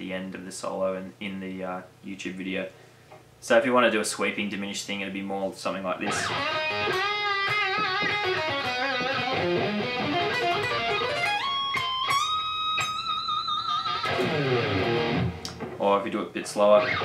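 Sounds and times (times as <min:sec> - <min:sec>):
electric guitar arpeggio run: 0:06.1 - 0:15.6, 0:16.8 - 0:17.0.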